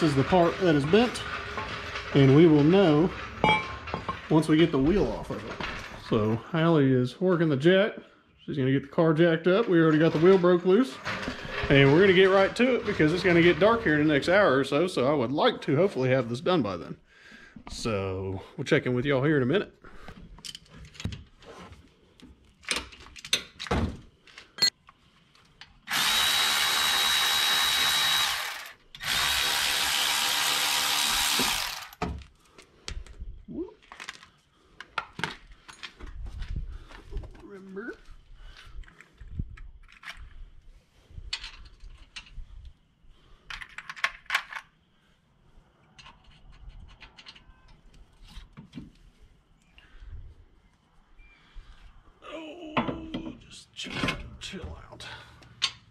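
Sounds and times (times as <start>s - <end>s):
power tool motor whine: 25.9s - 32.0s.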